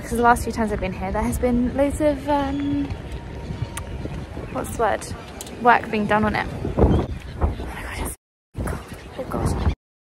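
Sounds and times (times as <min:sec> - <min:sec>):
street ambience: 0:00.0 - 0:09.8
wind buffeting microphone: 0:00.0 - 0:09.8.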